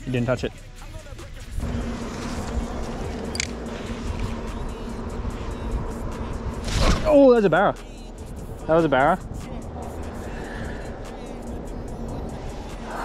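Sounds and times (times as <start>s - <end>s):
boat motor humming: 1.5s - 13.0s.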